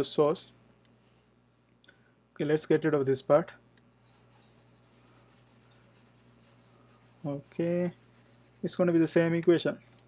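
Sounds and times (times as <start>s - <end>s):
stylus scratching on drawing tablet: 4.0s - 9.5s.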